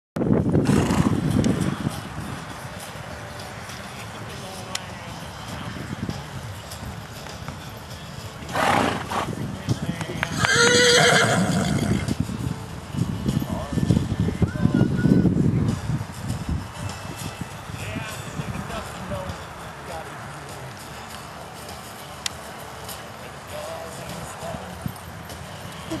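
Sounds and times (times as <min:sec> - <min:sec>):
horse hoofbeats on dirt: 0:00.6 - 0:15.0.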